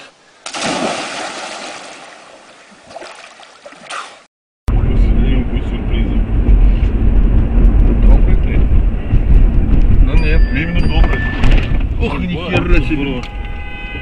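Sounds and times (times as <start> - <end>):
car road and engine rumble: 4.7 - 14.0.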